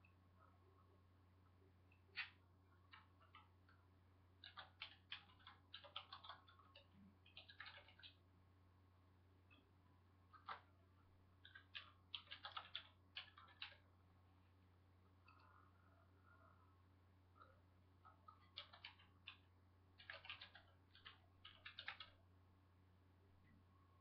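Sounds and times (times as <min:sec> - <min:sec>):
low steady hum: 0:00.0 - 0:24.0
keyboard typing and mouse clicks: 0:01.9 - 0:03.8, 0:04.4 - 0:08.2, 0:10.3 - 0:10.8, 0:11.4 - 0:13.9, 0:17.4 - 0:22.2.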